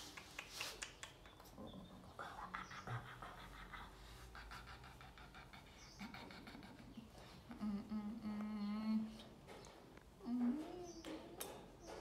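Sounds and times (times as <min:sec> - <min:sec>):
woman humming softly: 0:06.8 - 0:09.4, 0:10.2 - 0:11.6.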